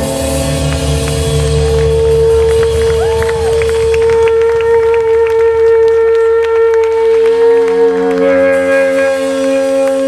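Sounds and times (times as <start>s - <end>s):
bass line: 0.0s - 10.0s
long high lead note: 0.0s - 10.0s.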